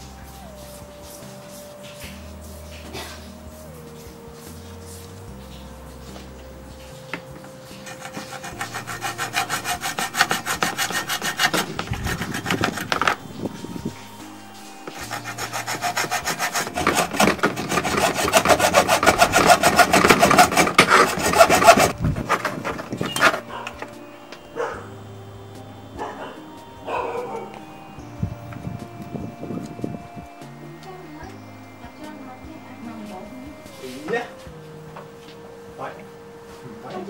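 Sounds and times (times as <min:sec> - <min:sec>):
saw scraping through circuit board: 0:07.7 - 0:25.0.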